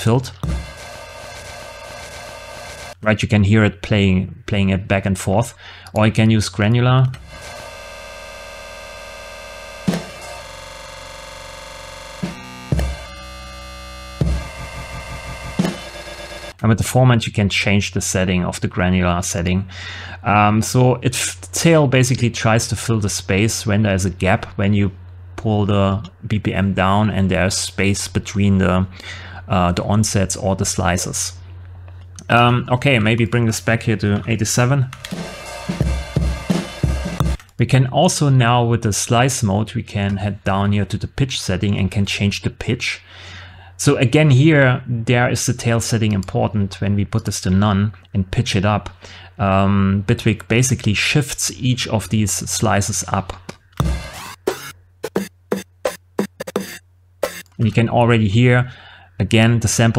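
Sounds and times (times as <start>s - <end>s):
buzzing drone: 0.0s - 3.0s, 7.2s - 16.6s, 35.1s - 37.4s, 53.8s - 57.5s
kick drum thumps: 0.4s - 0.8s, 14.2s - 15.9s, 35.8s - 37.4s, 53.8s - 54.2s
snare drum hits: 14.2s - 15.9s, 53.8s - 57.4s.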